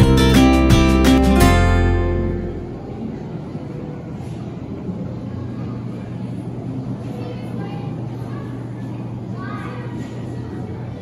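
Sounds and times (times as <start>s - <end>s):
steady low hum: 0.0s - 9.4s
faint voices: 2.3s - 11.0s.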